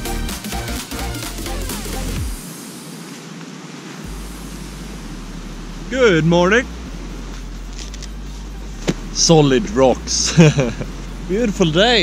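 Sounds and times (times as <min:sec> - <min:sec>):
electronic background music: 0:00.0 - 0:03.0, 0:04.1 - 0:12.0
steady outdoor hiss: 0:00.0 - 0:12.0
low rumble: 0:04.1 - 0:12.0.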